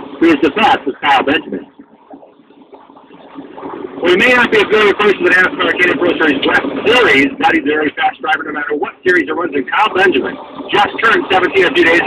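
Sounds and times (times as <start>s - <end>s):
broadcast commentary: 0.1s - 12.0s.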